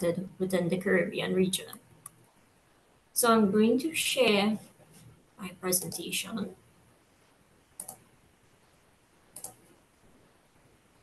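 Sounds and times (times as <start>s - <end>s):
computer mouse clicks: 1.7s - 2.3s, 5.7s - 6.1s, 7.8s - 8.1s, 9.3s - 9.8s.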